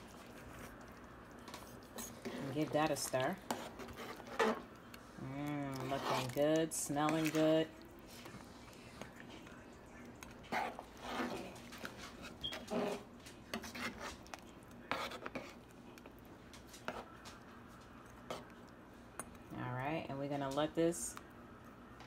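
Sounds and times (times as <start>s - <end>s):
spoon stirring thick stew: 0.0s - 19.5s.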